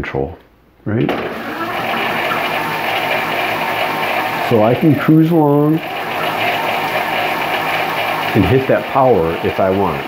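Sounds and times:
electric bike motor whirring: 1.2 - 10.0.

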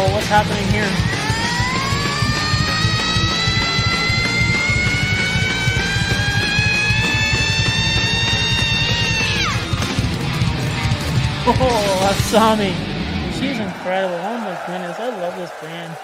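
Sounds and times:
heavy metal band playing: 0.0 - 14.2
drums pounding: 0.0 - 15.8.

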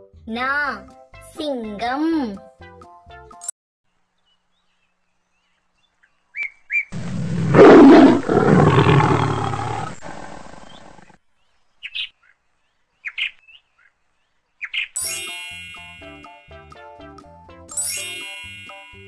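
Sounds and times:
bird chirps: 4.2 - 6.9, 10.6 - 16.0
lion roaring: 7.0 - 11.2.

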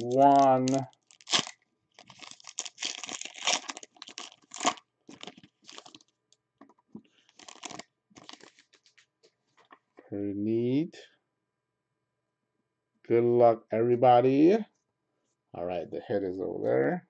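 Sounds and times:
foil wrapper tearing and crinkling: 0.0 - 6.1, 7.3 - 9.0.

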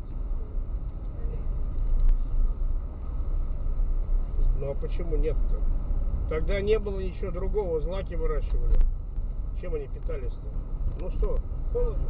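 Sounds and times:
road and engine rumble in car: 0.0 - 12.0.

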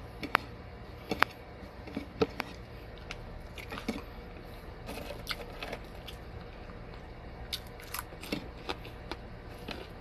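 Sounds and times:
person biting and chewing food: 0.0 - 10.0.

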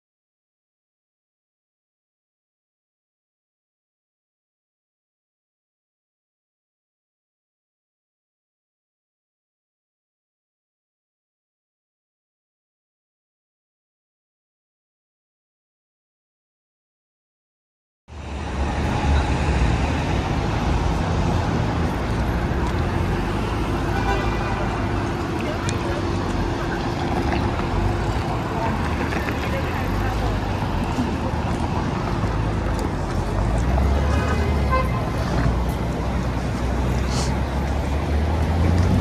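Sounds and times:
passersby voices: 18.1 - 39.0
passing traffic rumble: 18.1 - 39.0.

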